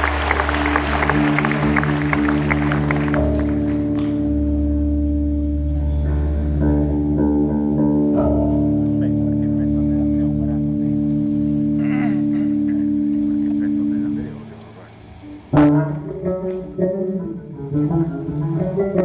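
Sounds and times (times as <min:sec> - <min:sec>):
audience applause: 0:00.0 - 0:04.2
rock band sustained notes: 0:00.0 - 0:19.0.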